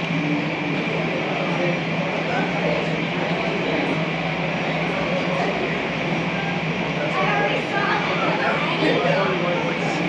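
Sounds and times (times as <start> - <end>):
constant low hum: 0.0 - 10.0
muffled jet airliner taxiing: 0.0 - 10.0.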